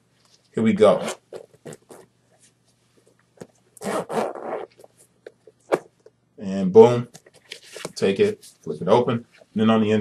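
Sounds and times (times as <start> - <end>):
zipper being pulled open: 0.9 - 2.1, 3.8 - 5.0.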